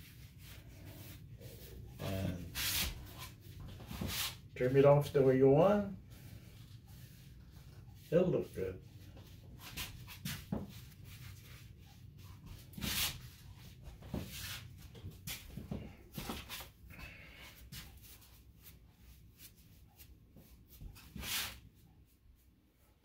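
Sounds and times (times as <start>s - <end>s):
brushing: 0.0s - 15.6s
soft rustles and handling noises: 0.0s - 23.0s.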